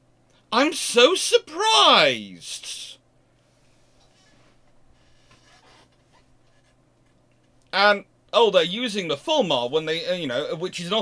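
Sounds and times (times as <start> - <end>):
faint soft noises: 2.6 - 7.8.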